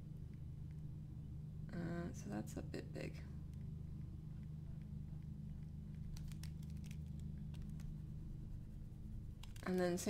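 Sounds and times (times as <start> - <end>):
steady low hum: 0.0 - 10.0
stylus tapping and scratching: 4.4 - 10.0.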